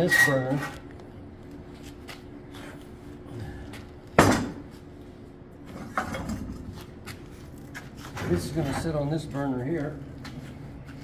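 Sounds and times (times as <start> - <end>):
faint hum: 0.0 - 11.0.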